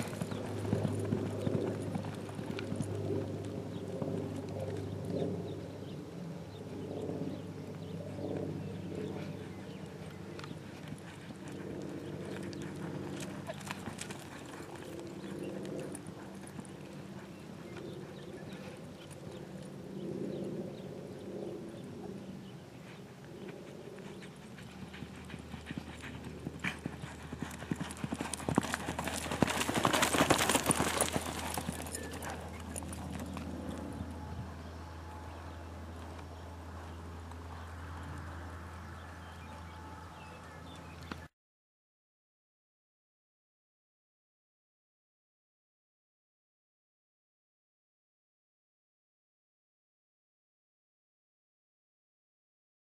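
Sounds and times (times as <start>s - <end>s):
horse hoofbeats on dirt: 0.0s - 5.3s, 9.0s - 19.4s, 23.4s - 41.2s.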